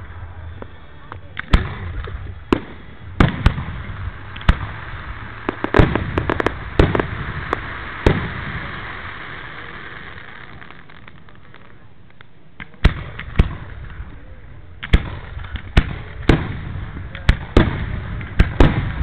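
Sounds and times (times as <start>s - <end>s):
fireworks crackling: 0.0s - 19.0s
lingering hiss: 0.0s - 19.0s.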